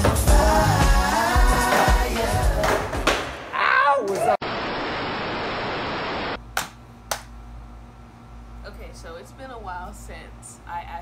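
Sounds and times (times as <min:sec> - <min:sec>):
music with singing: 0:00.0 - 0:03.2
steady static hiss: 0:04.4 - 0:06.5.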